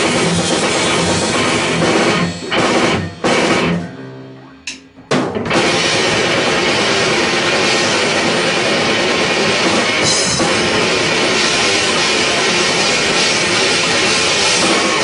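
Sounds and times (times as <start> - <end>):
heavy metal band playing: 0.0 - 15.0.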